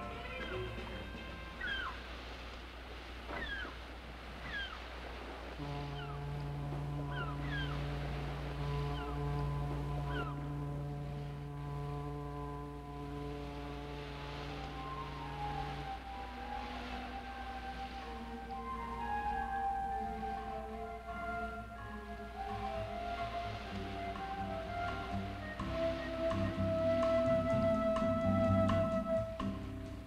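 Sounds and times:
bird cries: 1.5s - 2.1s, 3.3s - 4.9s, 5.8s - 6.4s, 7.0s - 8.0s, 8.7s - 10.6s
foghorn blast: 5.6s - 29.7s.

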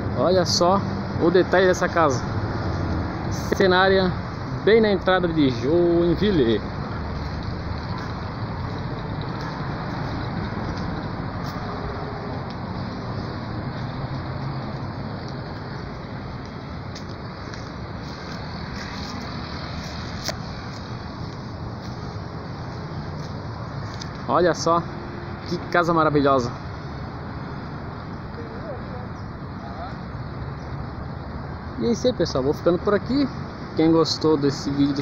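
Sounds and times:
road traffic hum: 0.0s - 35.0s.

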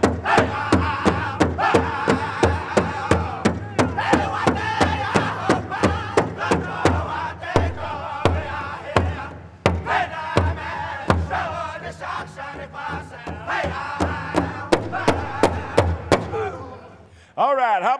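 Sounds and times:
large drum beating: 0.0s - 16.5s
high-pitched singers chanting: 0.0s - 17.2s.

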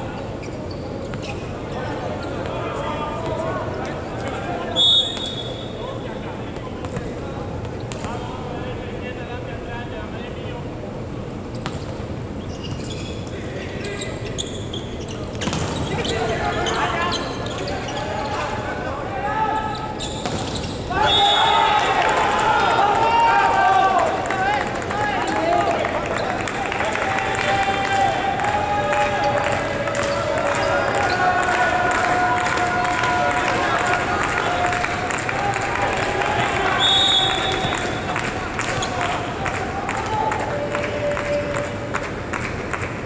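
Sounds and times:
murmur of voices: 0.0s - 11.6s, 13.1s - 43.0s
players calling out: 12.0s - 41.7s
volleyball ball hits: 15.4s - 16.0s, 20.2s - 20.7s
players shouting: 15.8s - 41.8s.

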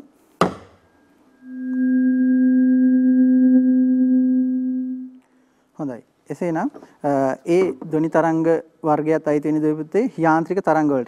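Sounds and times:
tuning fork ringing: 0.8s - 5.2s.

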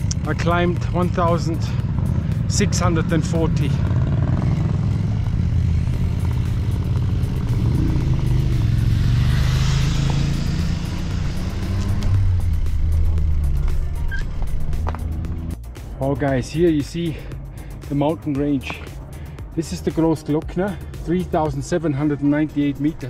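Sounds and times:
background music: 0.0s - 23.0s
motorcycle passing: 0.0s - 23.0s
traffic passing on road: 0.0s - 23.0s.

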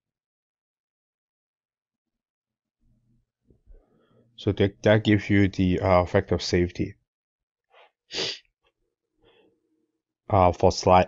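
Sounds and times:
faint breathing: 3.7s - 4.4s
man inhaling: 8.1s - 8.4s
sharp burst of breath: 8.1s - 8.4s.

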